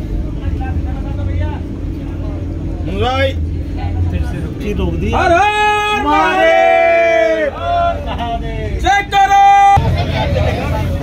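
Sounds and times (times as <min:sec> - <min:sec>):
crowd voices: 0:00.0 - 0:11.0
train coach rumble and hum: 0:00.0 - 0:11.0
loud rising shout: 0:05.2 - 0:10.4.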